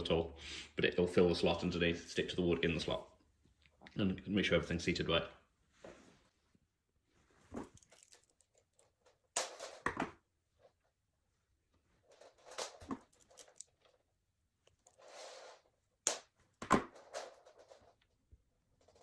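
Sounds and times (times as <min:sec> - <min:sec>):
soft rustle: 0:05.6 - 0:09.0.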